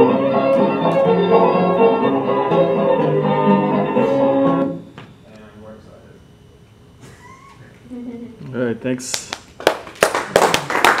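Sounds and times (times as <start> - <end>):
audience applause: 9.6 - 11.0.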